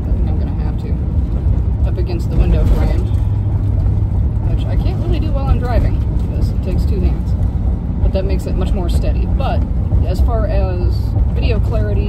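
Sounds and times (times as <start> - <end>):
woman speaking: 0.0 - 1.0, 1.8 - 3.2, 4.4 - 7.4, 8.0 - 12.0
road noise: 0.0 - 12.0
van engine rumble: 0.0 - 12.0.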